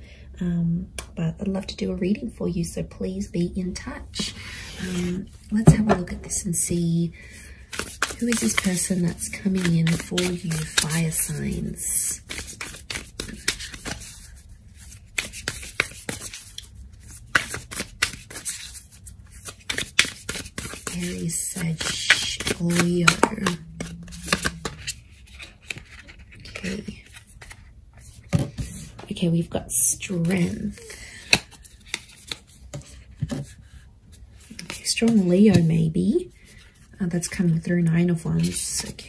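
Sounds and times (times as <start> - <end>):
cards being shuffled by hand: 7.4 - 29.0, 30.0 - 35.8, 38.4 - 39.0.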